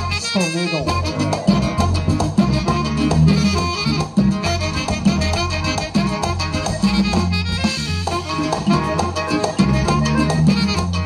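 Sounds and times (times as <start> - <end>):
accordion melody: 0.0 - 11.0
bass line: 0.0 - 11.0
drums: 0.0 - 11.0.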